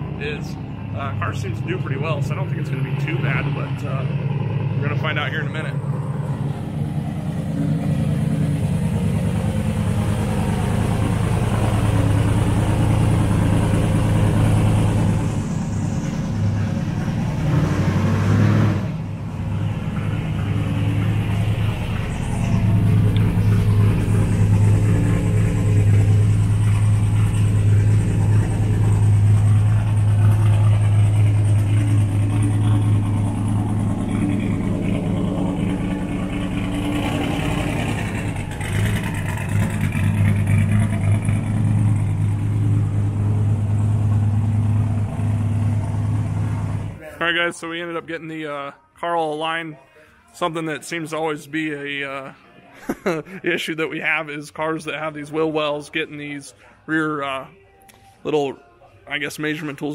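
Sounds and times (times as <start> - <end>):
car engine idling: 0.0 - 17.8, 18.6 - 48.3.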